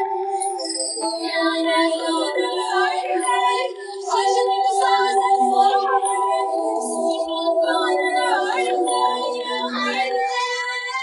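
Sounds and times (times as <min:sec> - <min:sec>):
woman singing a cappella: 0:01.0 - 0:11.0.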